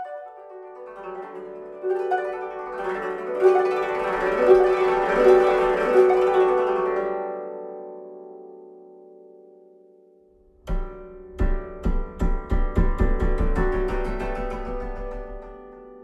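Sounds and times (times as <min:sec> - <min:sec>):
koto plucked: 0:00.0 - 0:16.0.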